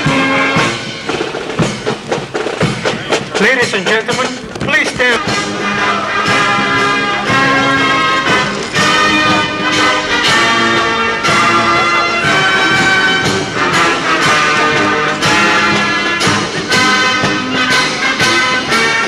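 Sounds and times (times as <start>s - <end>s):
military brass band playing: 0.0s - 19.0s.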